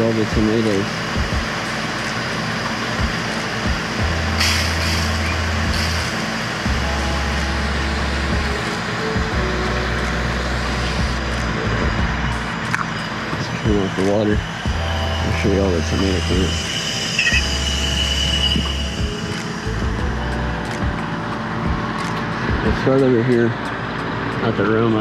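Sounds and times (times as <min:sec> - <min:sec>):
hose nozzle spraying mist: 0:04.4 - 0:06.2.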